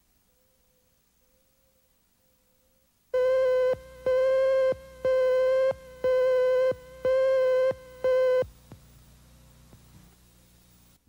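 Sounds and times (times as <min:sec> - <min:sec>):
buzzy electronic beeps: 0:03.2 - 0:08.5.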